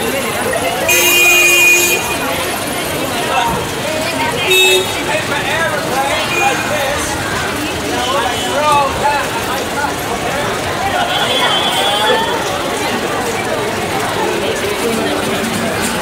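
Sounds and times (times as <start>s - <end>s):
voices chattering: 0.0s - 16.0s
vehicle horns tooting: 0.7s - 2.7s, 4.2s - 5.4s, 6.0s - 7.2s, 7.8s - 9.0s, 10.9s - 12.5s.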